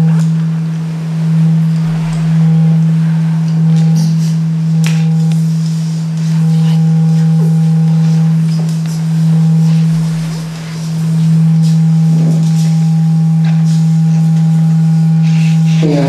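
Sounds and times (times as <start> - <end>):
faint higher tones: 0.0 - 16.0
low electronic sine drone: 0.0 - 16.0.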